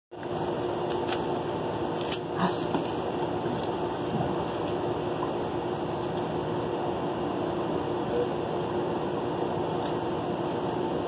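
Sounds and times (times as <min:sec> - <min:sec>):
steady mechanical hum: 0:00.1 - 0:11.0.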